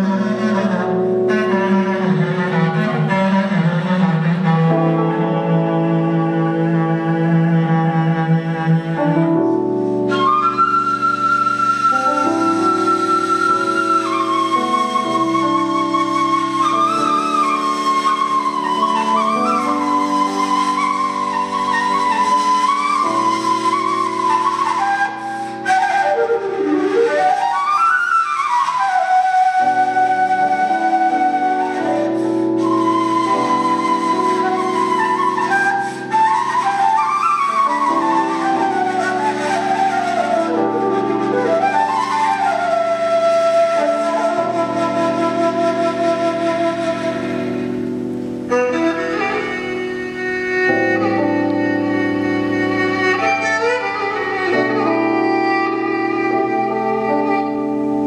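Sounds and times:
wooden flute melody: 0:00.0 - 0:58.0.

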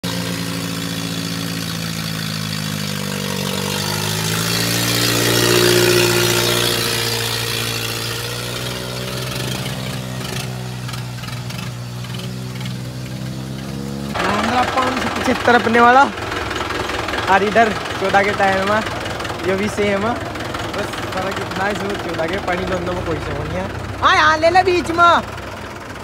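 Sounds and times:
rapid clatter: 0:00.0 - 0:26.0
tractor diesel engine under load: 0:00.0 - 0:26.0.

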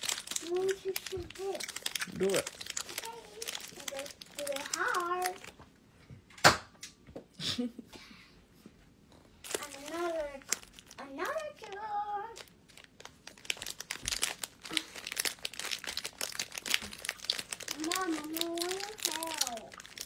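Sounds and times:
dense crinkling and crackling: 0:00.0 - 0:05.8, 0:09.4 - 0:20.0.

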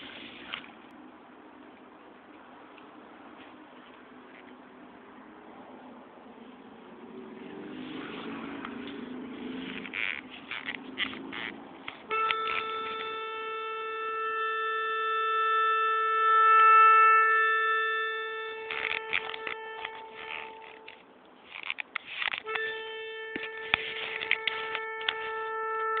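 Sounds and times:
melodica long note: 0:12.1 - 0:21.0, 0:22.4 - 0:26.0.

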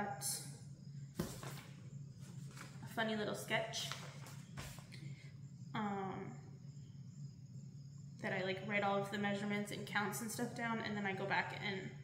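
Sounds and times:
paper rustling and crinkling: 0:01.2 - 0:02.9, 0:03.8 - 0:04.9.

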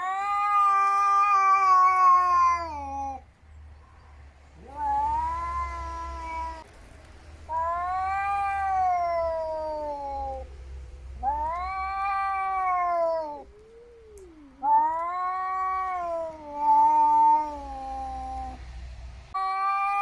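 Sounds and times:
cats yowling: 0:00.0 - 0:03.3, 0:04.5 - 0:06.7, 0:07.5 - 0:10.5, 0:11.2 - 0:18.6, 0:19.3 - 0:20.0.

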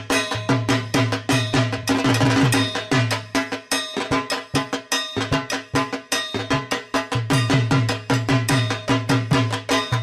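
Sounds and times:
drum beat: 0:00.0 - 0:10.0
ringing metallic clang: 0:00.0 - 0:10.0.

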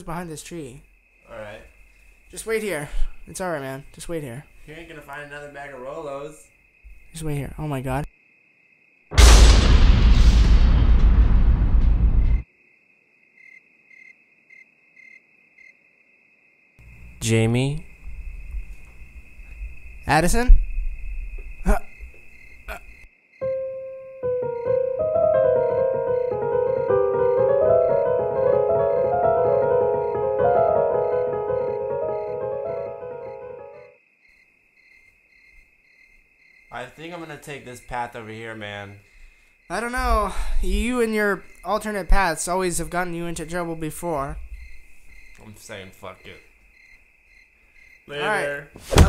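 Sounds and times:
cricket-like trill: 0:00.0 - 0:48.8
loud rushing rumble: 0:09.2 - 0:12.4
background music: 0:23.5 - 0:33.9.

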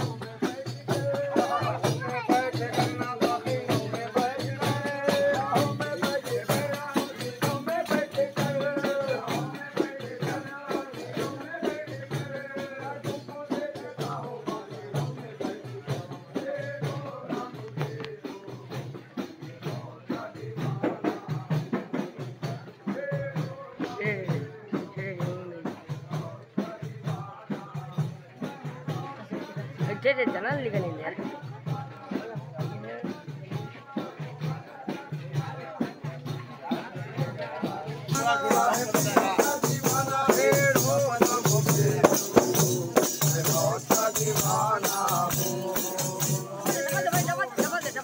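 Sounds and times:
hand drums beating: 0:00.0 - 0:48.0
jingling rattling percussion: 0:00.0 - 0:48.0
men singing together: 0:00.0 - 0:48.0.

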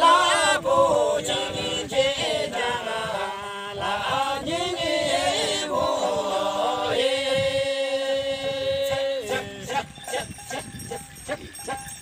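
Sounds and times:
group singing in unison: 0:00.0 - 0:09.9.

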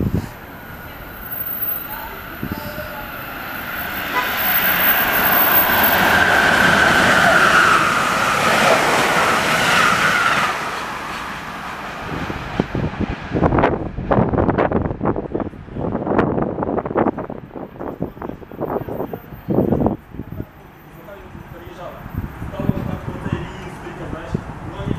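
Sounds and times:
wind buffeting microphone: 0:00.0 - 0:03.8, 0:11.8 - 0:20.5, 0:21.3 - 0:24.9
train passing at high speed: 0:00.0 - 0:24.9.

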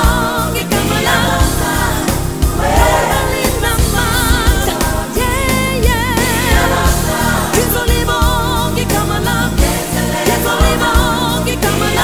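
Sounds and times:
bass guitar: 0:00.0 - 0:12.0
choir singing: 0:00.0 - 0:12.0
drum kit beat: 0:01.4 - 0:11.8.

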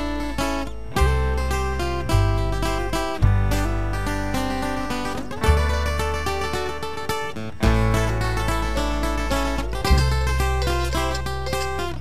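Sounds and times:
acoustic guitar strumming: 0:00.0 - 0:12.0
upright bass: 0:00.0 - 0:12.0.

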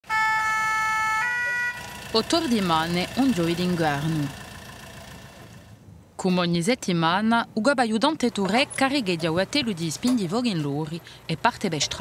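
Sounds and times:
two-tone fire engine siren: 0:00.0 - 0:02.7.

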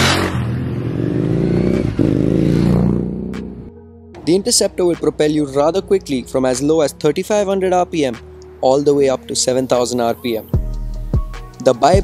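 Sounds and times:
motorcycle accelerating past: 0:00.0 - 0:03.7.

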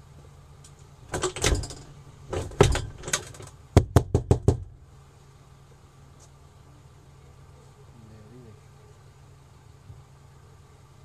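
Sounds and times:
knocking on a door: 0:03.8 - 0:04.7.

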